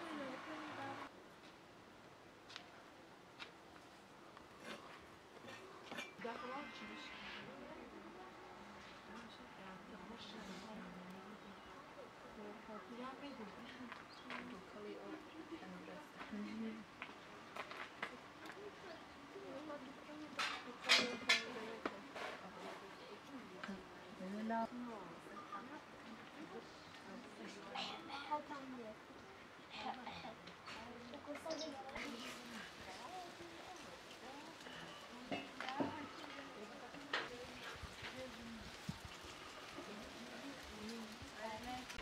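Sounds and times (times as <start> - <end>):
soft voices talking: 0.0 - 1.2, 4.4 - 42.0.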